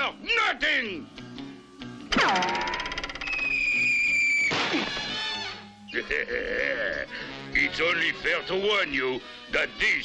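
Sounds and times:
cartoon boing: 2.1s - 3.6s.

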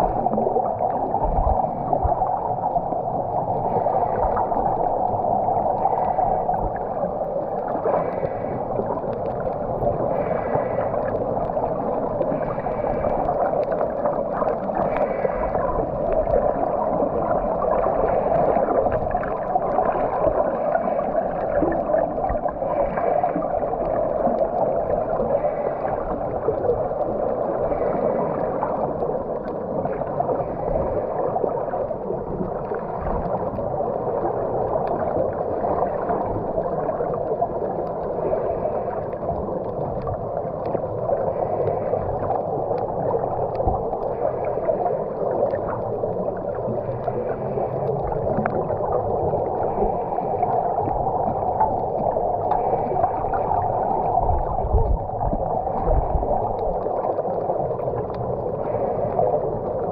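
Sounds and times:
muffled underwater water wash: 0.0s - 59.9s.

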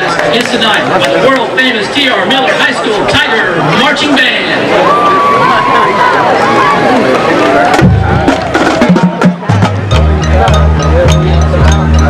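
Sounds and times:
crowd voices: 0.0s - 12.0s
marching band playing: 7.6s - 12.0s.

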